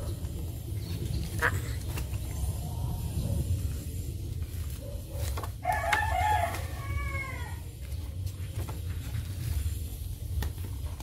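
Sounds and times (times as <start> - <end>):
steady low hum: 0.0 - 11.0
album pages clicking: 4.6 - 6.9
rooster crowing: 5.6 - 7.7.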